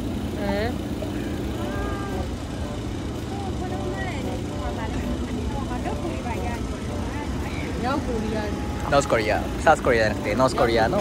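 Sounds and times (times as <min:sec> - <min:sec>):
faint voices: 0:00.0 - 0:11.0
traffic rumble: 0:00.0 - 0:11.0.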